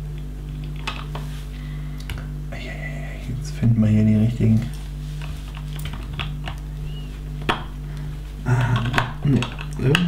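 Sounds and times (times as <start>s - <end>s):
plastic bricks clicking: 8.6s - 10.0s.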